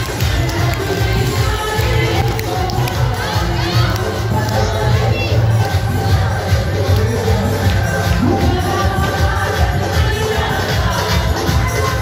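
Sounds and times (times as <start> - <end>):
crowd shouting and cheering: 0.0 - 12.0
devotional music with heavy bass: 0.0 - 12.0.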